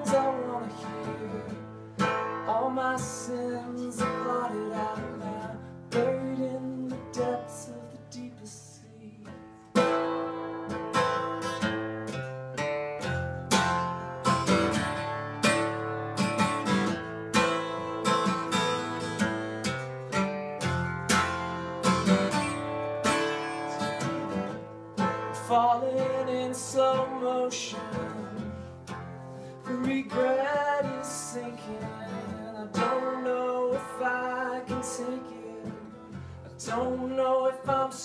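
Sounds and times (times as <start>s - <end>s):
acoustic guitar strumming: 0.0s - 38.0s.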